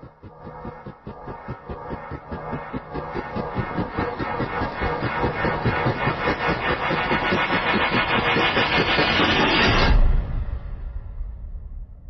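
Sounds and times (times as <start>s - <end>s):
pulsing rumble: 0.0s - 12.0s.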